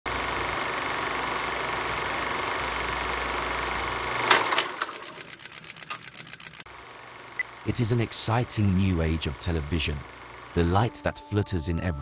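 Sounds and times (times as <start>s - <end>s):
film projector clattering: 0.1s - 10.9s.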